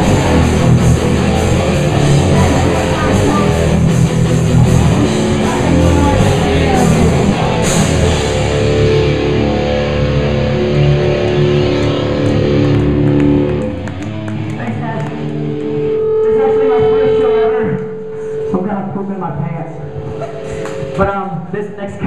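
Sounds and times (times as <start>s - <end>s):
live rock band playing: 0.0s - 14.6s.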